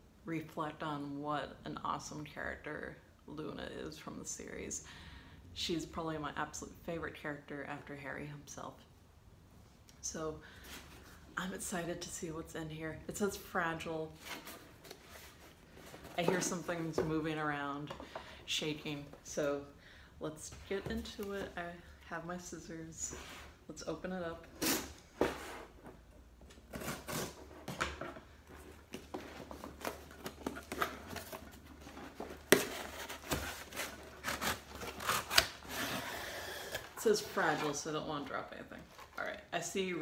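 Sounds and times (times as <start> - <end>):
cardboard rustling: 14.1 - 17.1, 26.6 - 39.4
box cutter slitting cardboard tape: 26.7 - 27.8, 32.4 - 37.6.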